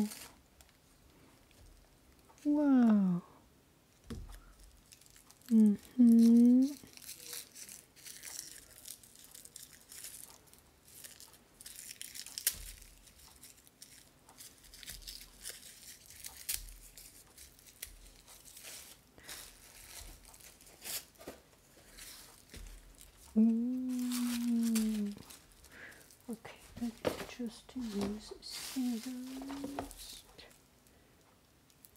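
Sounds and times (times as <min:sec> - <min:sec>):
tissue paper rustling and tearing: 0:00.0 - 0:00.4, 0:04.5 - 0:30.6
woman's wordless vocal sound: 0:02.4 - 0:03.4, 0:05.5 - 0:06.8, 0:23.3 - 0:25.2.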